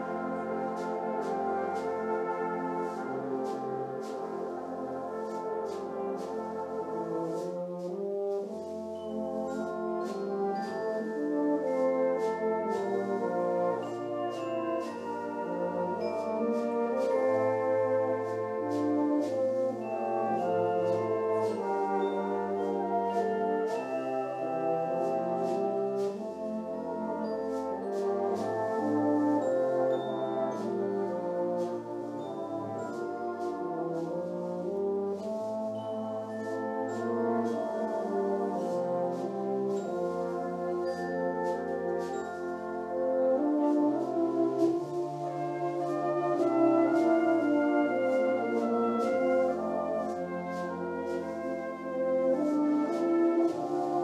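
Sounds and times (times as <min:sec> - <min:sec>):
brass band playing: 0:00.0 - 0:54.0
euphonium and cornet duet: 0:00.0 - 0:54.0.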